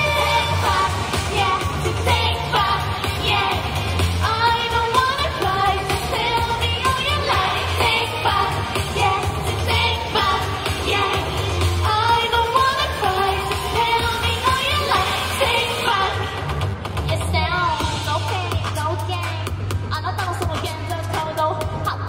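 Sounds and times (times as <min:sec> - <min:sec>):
girls singing into microphones: 0:00.0 - 0:16.6
backing track with bass beat: 0:00.0 - 0:22.0.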